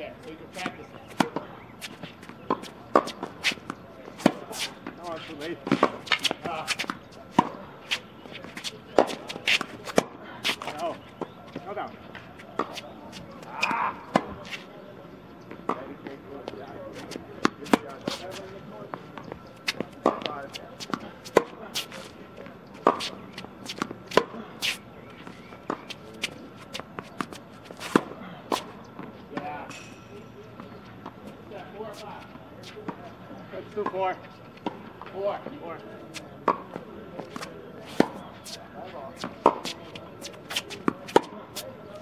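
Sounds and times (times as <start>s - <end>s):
tennis balls hit with rackets: 0.4s - 14.6s, 16.6s - 30.0s, 36.0s - 42.0s
balls bouncing on hard court: 17.0s - 22.1s, 36.1s - 41.7s.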